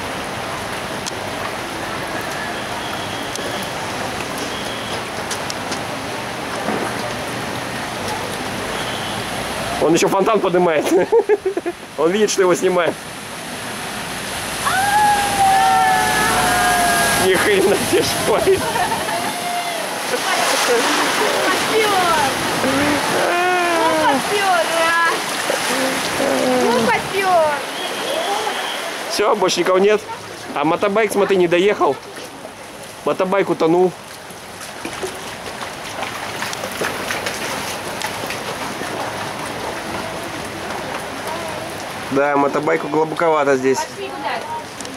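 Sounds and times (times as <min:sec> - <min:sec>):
rushing water spray: 0:00.0 - 0:44.9
truck driving through floodwater: 0:00.0 - 0:44.9.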